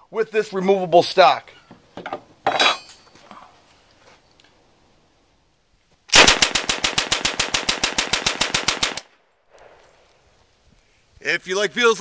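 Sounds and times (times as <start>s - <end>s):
metal gun parts clinking: 2.0s - 3.2s.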